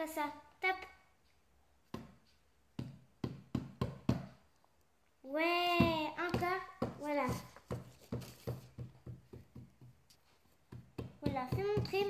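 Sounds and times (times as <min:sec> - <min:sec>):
hand patting on tabletop: 0:05.8 - 0:12.0.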